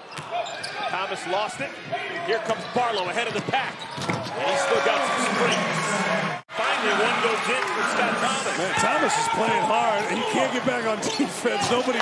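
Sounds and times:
sneakers squeaking: 0:00.0 - 0:00.9, 0:02.5 - 0:04.4
arena crowd noise: 0:00.0 - 0:12.0.

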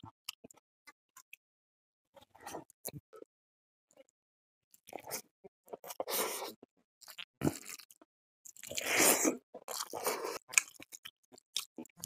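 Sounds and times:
wet chewing with smacking clicks: 0:09.6 - 0:12.0.

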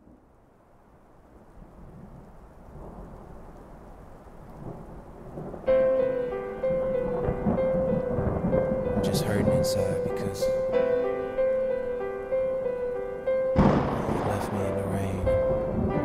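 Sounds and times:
rain: 0:00.0 - 0:16.0
low rumbling thunder: 0:01.5 - 0:16.0
keyboard melody of repeated notes: 0:05.7 - 0:16.0.

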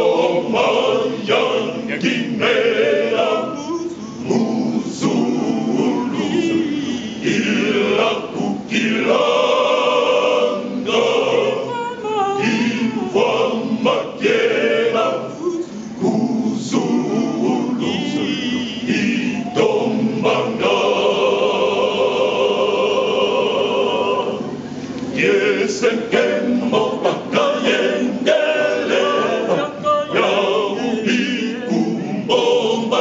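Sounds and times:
men's choir singing: 0:00.0 - 0:33.0.

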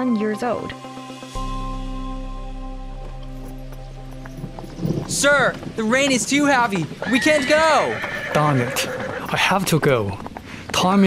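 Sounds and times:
held music chord: 0:00.0 - 0:07.0
horse hooves clip-clopping: 0:03.0 - 0:11.0.

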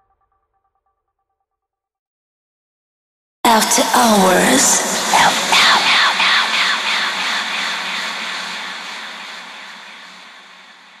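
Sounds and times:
spoken words through delay echo: 0:03.5 - 0:10.2
whooshing swell: 0:03.9 - 0:11.0.

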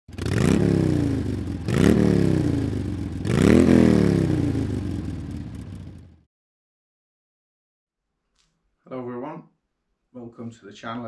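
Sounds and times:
motorcycle engine revving: 0:00.1 - 0:06.3.

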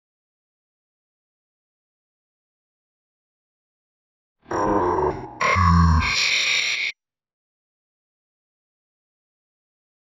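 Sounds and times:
cartoon grunt voice: 0:04.5 - 0:06.8.

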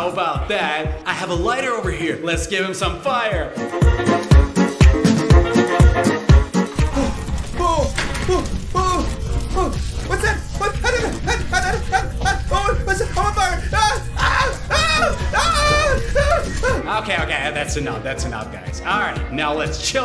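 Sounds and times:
background music with low beat: 0:00.0 - 0:20.0
man yelping and groaning: 0:06.8 - 0:17.0.

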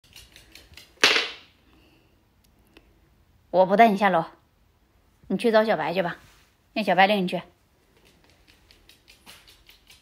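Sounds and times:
dog claws clicking on wooden floor: 0:00.0 - 0:01.5, 0:07.9 - 0:10.0.

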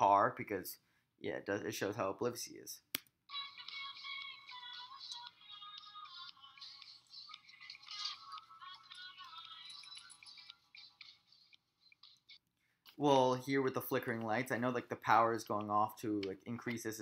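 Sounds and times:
faint song with singing: 0:03.3 - 0:17.0.

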